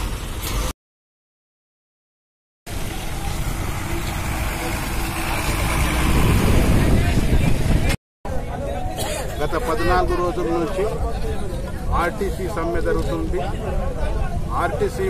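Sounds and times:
bus engine rumbling: 2.7s - 15.0s.

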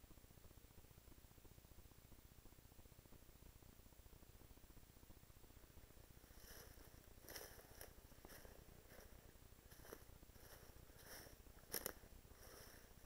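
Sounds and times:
footsteps in dry leaves: 6.2s - 13.0s.

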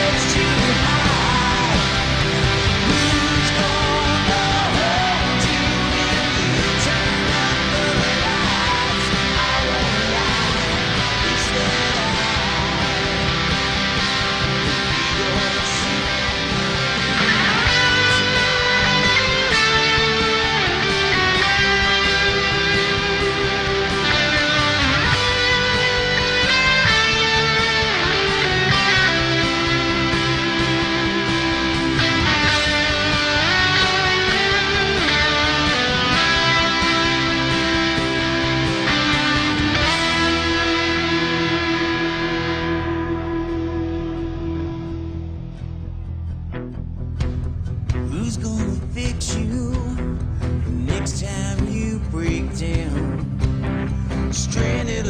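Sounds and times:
electric guitar solo: 0.0s - 49.3s
rock band backing track: 0.0s - 55.0s.

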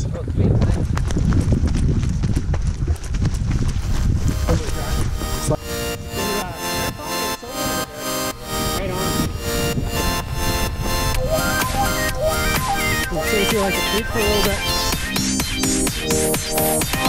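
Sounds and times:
runners' footfalls on dirt trail: 0.0s - 5.6s
wind rumbling on microphone: 0.0s - 7.0s, 7.7s - 15.0s
electronic music with steady beat: 4.2s - 17.0s.

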